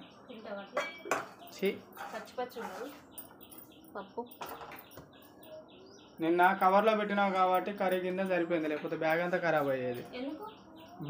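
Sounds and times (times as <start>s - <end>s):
birds chirping faintly: 0.0s - 11.0s.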